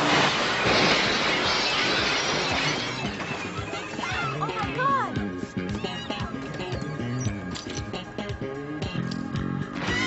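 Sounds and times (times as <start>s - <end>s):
glass shattering and falling: 0.0s - 4.1s.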